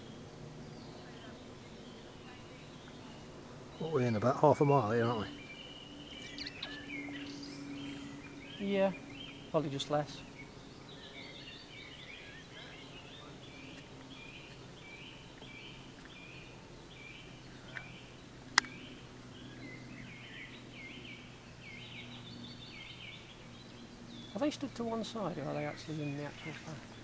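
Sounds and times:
birds chirping: 0.0s - 27.0s
faint low hum: 0.0s - 27.0s.

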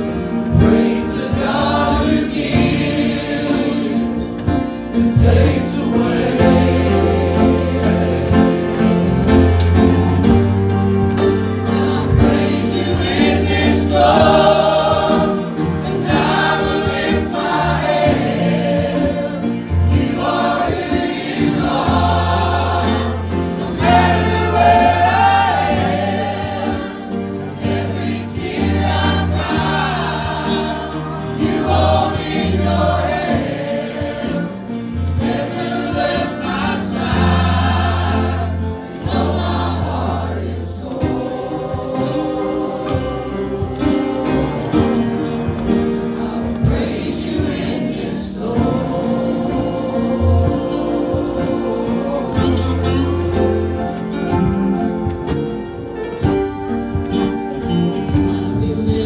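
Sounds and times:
band accompaniment: 0.0s - 59.0s
man and woman singing gospel: 11.7s - 45.2s, 46.0s - 55.4s, 58.0s - 59.0s.

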